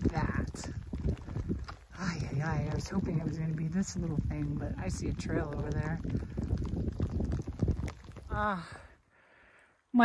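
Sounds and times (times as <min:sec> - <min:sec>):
footsteps on a trail: 0:00.0 - 0:08.4
handheld camera rustle and bumps: 0:00.0 - 0:08.4.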